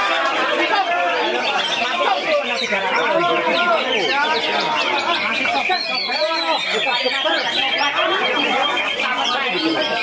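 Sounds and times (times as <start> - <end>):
crowd chatter: 0.0 - 10.0
songbirds singing: 0.0 - 10.0.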